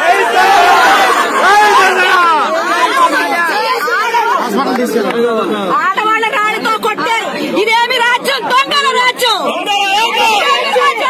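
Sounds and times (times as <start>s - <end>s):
crowd voices talking: 0.0s - 11.0s.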